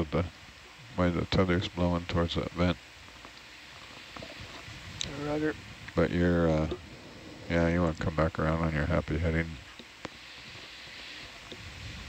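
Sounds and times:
faint steady hiss: 0:00.0 - 0:12.0
small ticks: 0:03.1 - 0:05.1.

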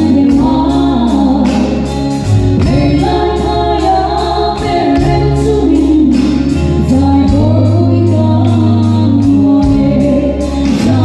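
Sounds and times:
bass guitar: 0:00.0 - 0:11.0
drums with cymbal beat: 0:00.0 - 0:11.0
keyboard: 0:00.0 - 0:11.0
voices singing gospel: 0:00.0 - 0:11.0.

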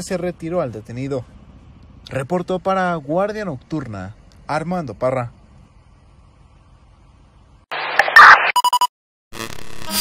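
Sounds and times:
distorted static burst: 0:07.7 - 0:08.8, 0:09.4 - 0:10.0
short electronic beeps: 0:08.0 - 0:08.9.

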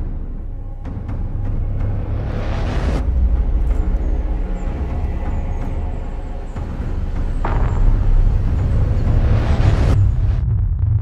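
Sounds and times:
deep spacecraft rumble: 0:02.4 - 0:11.0.

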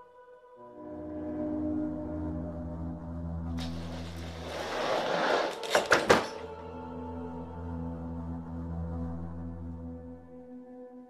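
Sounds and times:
eerie ambient music: 0:00.0 - 0:11.0
object falling and hitting floor: 0:03.6 - 0:06.5.

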